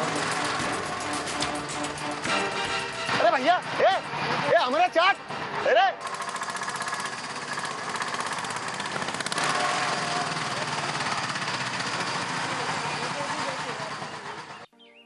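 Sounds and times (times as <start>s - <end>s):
three-wheeler engine chugging: 0.0s - 14.7s.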